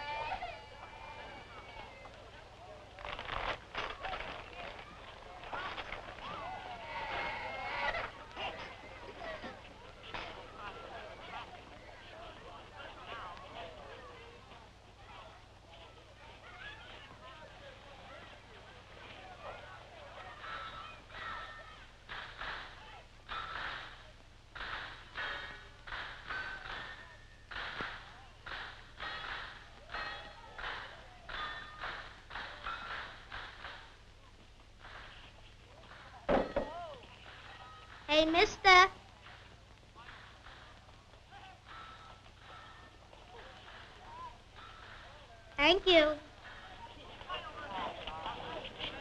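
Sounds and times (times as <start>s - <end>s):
overlapping talk and calls: 0.0s - 49.0s.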